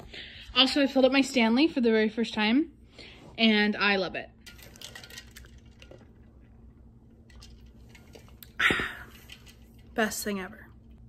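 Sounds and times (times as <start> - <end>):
tumbler clinks and rustles: 4.4 - 6.3, 7.2 - 10.2.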